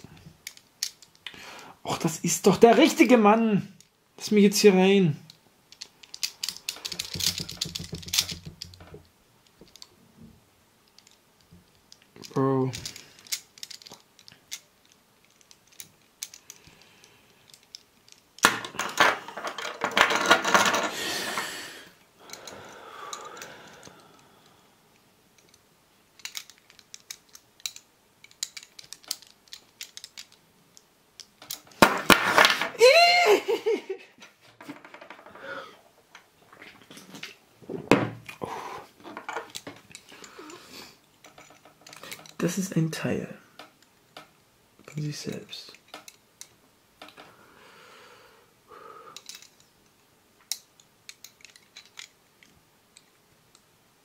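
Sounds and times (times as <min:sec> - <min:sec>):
metal puzzle pieces clicking: 0:00.0 - 0:01.4, 0:05.3 - 0:09.9, 0:10.8 - 0:20.9, 0:24.9 - 0:32.7, 0:39.1 - 0:43.0, 0:43.6 - 0:47.2, 0:49.2 - 0:53.7.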